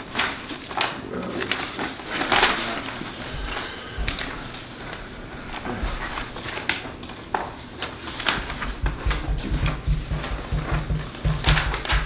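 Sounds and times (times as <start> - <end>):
paper rustling and shuffling: 0.0 - 12.0.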